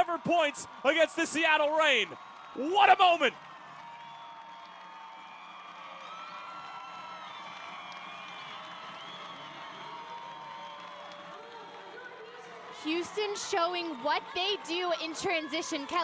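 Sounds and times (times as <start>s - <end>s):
stadium crowd cheering and clapping: 0.0s - 16.0s.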